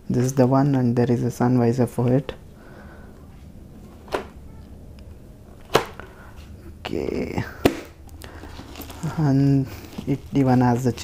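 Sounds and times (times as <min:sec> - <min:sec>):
sharp plastic snap: 0:05.6 - 0:06.0.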